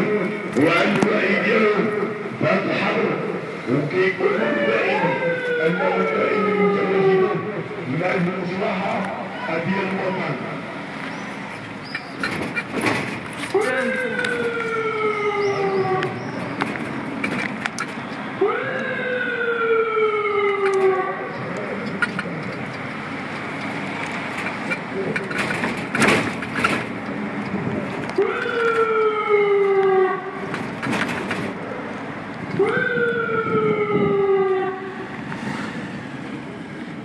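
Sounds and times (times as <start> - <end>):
road noise: 0.0 - 37.0
siren rising and falling: 4.2 - 7.6, 13.9 - 16.4, 18.4 - 21.5, 28.2 - 30.4, 32.6 - 35.1.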